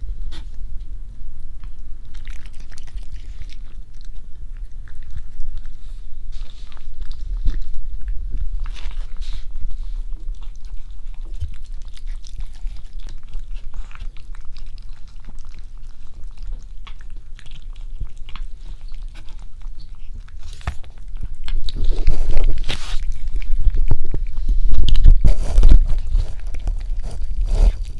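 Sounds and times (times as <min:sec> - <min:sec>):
cat chewing: 0:01.6 - 0:27.9.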